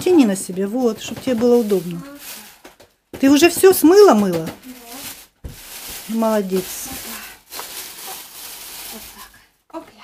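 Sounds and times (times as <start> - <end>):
plastic bags rustling: 0.0 - 9.6.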